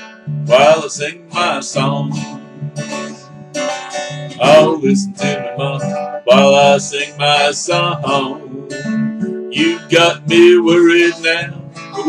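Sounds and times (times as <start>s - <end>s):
acoustic guitar strumming: 0.0s - 12.0s
person singing: 0.0s - 12.0s.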